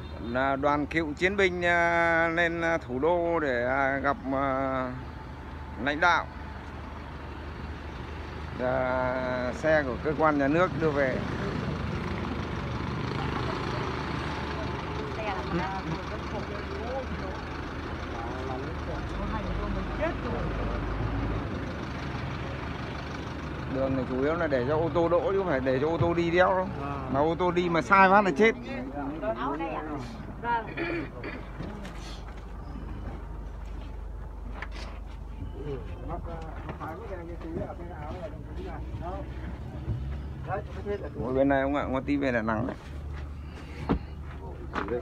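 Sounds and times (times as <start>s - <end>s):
street traffic: 0.0s - 45.0s
vehicle engine idling: 0.0s - 45.0s
people talking quietly: 23.8s - 45.0s.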